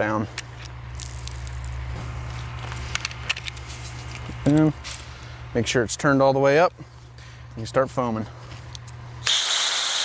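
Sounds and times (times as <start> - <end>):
steady low hum: 0.0 - 9.3.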